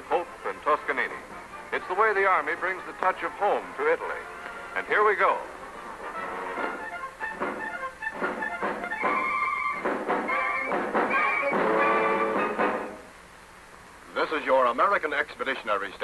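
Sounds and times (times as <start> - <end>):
orchestral strings theme: 0.0 - 13.1.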